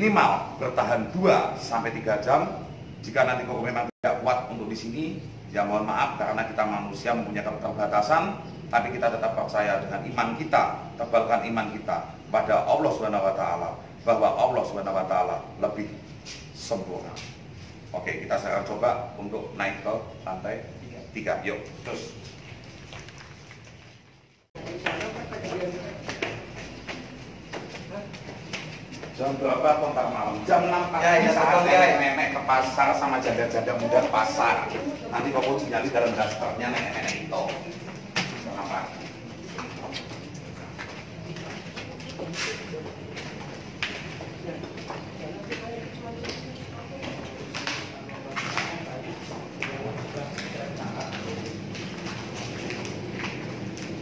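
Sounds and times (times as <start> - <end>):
footsteps on concrete stairs: 21.8 - 30.8, 33.6 - 54.0
faint voices: 24.6 - 54.0.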